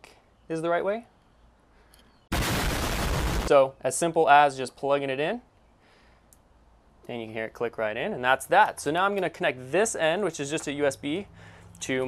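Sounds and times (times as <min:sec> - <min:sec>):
loud explosion blast: 0:02.3 - 0:03.5.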